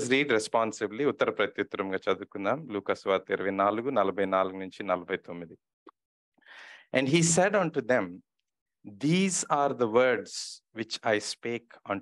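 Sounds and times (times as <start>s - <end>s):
soft breath: 6.4s - 6.9s
man speaking: 7.0s - 12.0s.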